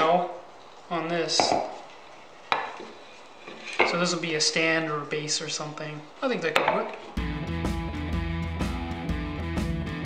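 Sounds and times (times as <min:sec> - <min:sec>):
faint handling: 0:00.6 - 0:04.4
wood knocking on wood: 0:01.4 - 0:01.8, 0:02.5 - 0:03.0, 0:06.6 - 0:07.0.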